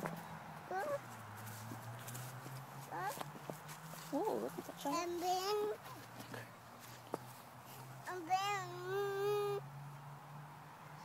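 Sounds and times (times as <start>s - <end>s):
toddler's high drawn-out vocal: 0.7s - 1.0s, 2.9s - 3.2s, 8.1s - 9.6s.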